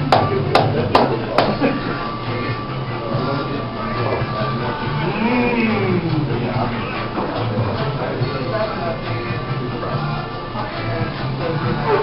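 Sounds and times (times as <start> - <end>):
busy room hum: 0.0 - 12.0.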